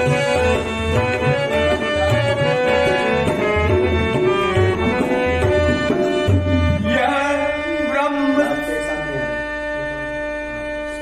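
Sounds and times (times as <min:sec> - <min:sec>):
harmonium sustained chords: 0:00.0 - 0:11.0
tabla beating a rhythm: 0:00.0 - 0:11.0.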